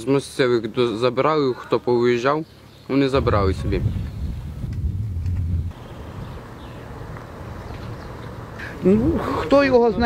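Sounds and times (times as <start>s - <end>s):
low rough rumble: 3.1s - 6.4s.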